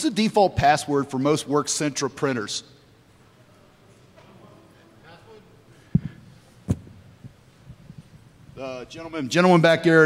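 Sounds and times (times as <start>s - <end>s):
microphone handling thumps: 5.9s - 8.2s.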